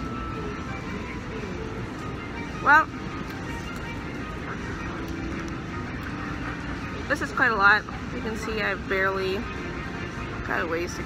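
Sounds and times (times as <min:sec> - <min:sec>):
airport terminal hum: 0:00.0 - 0:11.0.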